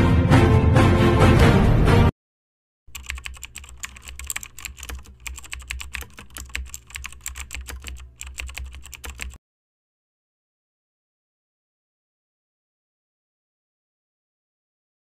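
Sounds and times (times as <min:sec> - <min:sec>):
keyboard typing clicks: 0:02.9 - 0:09.4.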